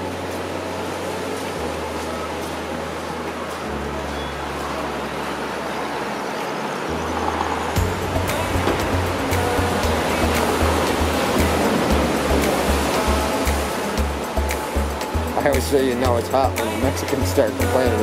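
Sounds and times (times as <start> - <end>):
surf breaking on rocks: 4.5 - 18.0
music with bass beat: 7.8 - 18.0.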